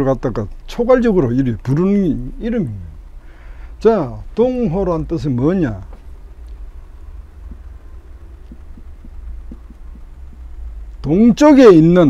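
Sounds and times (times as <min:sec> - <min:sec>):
steady low hum: 0:00.0 - 0:12.0
faint soft ticks: 0:00.3 - 0:00.8, 0:05.8 - 0:11.1.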